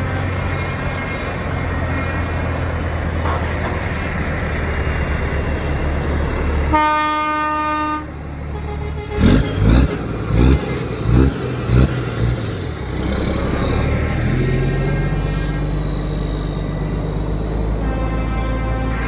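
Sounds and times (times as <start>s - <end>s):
diesel engine noise: 0.0s - 19.0s
truck engine revving: 0.0s - 19.0s
truck air horn blast: 3.1s - 4.0s, 6.7s - 10.7s, 17.8s - 19.0s.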